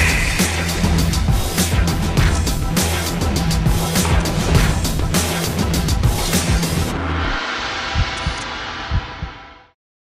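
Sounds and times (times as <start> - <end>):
whoosh: 0.0 - 2.0
deep bass thumps: 0.0 - 6.9, 8.0 - 9.4.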